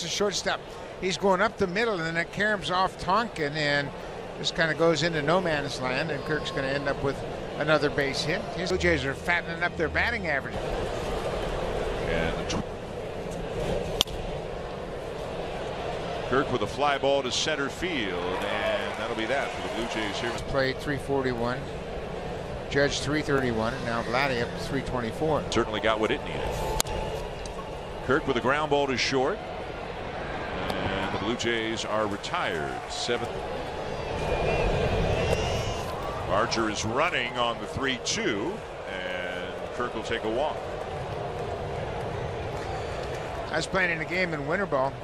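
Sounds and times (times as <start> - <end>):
murmur of crowd: 0.0 - 45.0.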